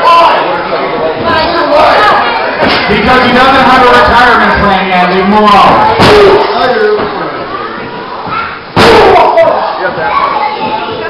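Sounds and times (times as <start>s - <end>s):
loud slam: 5.7s - 6.5s, 8.7s - 9.5s
voices shouting: 8.3s - 11.0s.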